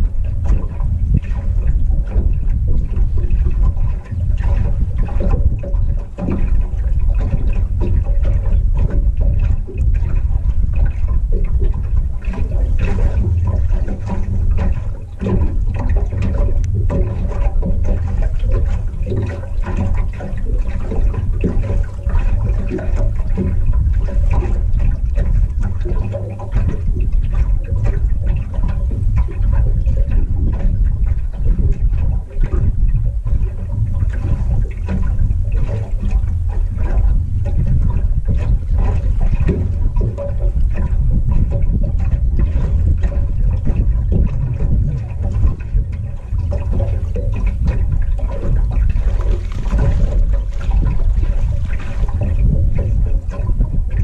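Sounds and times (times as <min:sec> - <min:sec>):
water lapping against metal hull: 0:00.0 - 0:54.0
wind rumble on microphone: 0:00.0 - 0:54.0.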